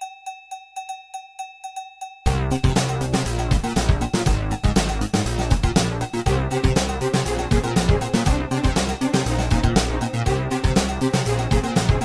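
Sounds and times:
cowbell-like metallic strikes: 0.0 - 6.3
closing music: 2.3 - 12.0.

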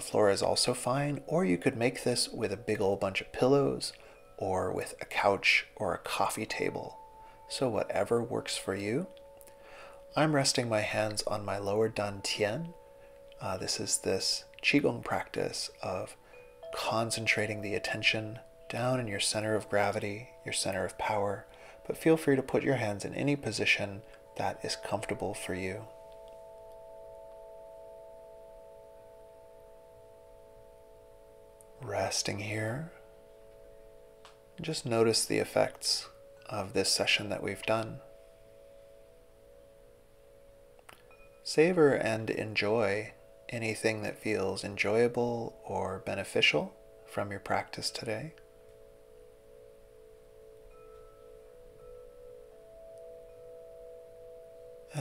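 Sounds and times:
ambient music held chord: 0.0 - 55.0
singing bowl meditation drone: 0.0 - 55.0.

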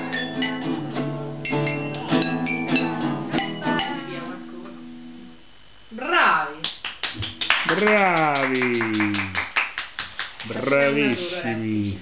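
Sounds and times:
quick hand claps: 6.6 - 10.6.

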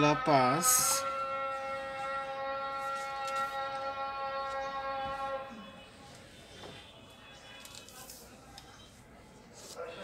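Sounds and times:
long steady pitched tone: 0.0 - 5.9.

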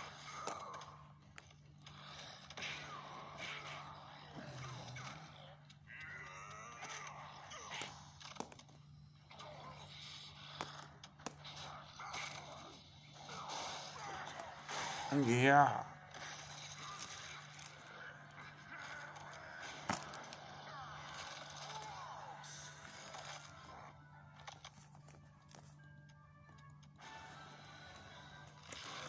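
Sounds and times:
plastic figures clacking: 4.6 - 12.8, 16.4 - 29.0.

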